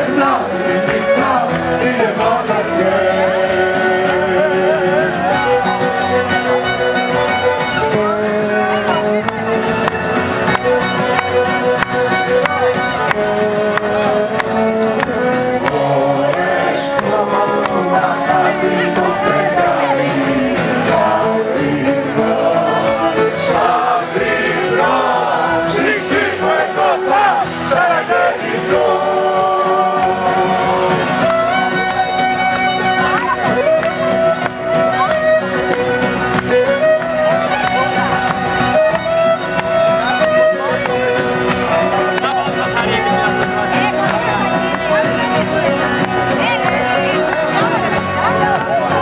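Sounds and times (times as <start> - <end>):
woman and man singing: 0.0 - 5.6, 15.7 - 31.5
accordion: 0.0 - 49.0
acoustic guitar and strings: 0.0 - 49.0
percussion: 0.0 - 49.0
violin vibrato melody: 0.0 - 49.0.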